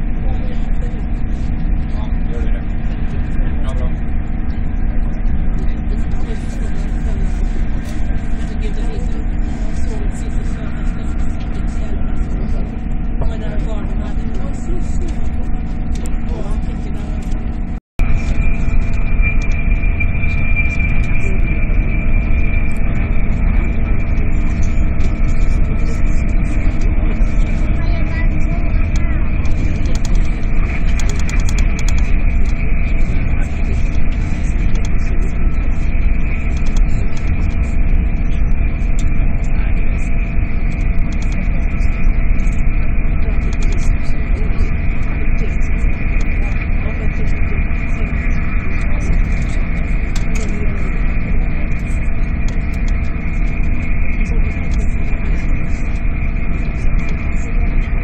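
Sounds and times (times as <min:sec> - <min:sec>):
constant hums: 0:00.0 - 0:58.0
train cabin rumble: 0:00.0 - 0:58.0.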